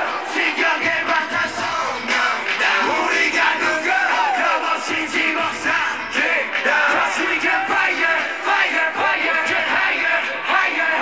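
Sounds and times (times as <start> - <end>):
crowd yelling and screaming: 0.0 - 11.0
loud live hip-hop song: 0.0 - 11.0.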